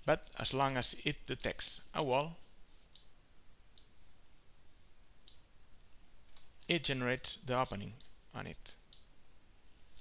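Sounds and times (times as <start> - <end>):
computer mouse clicks: 2.9 - 3.1, 5.2 - 5.5.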